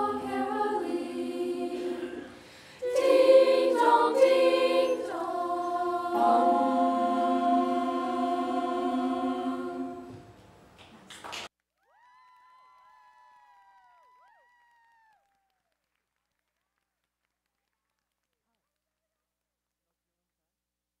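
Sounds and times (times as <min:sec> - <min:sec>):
girls' choir holding a chord: 0:00.0 - 0:10.4.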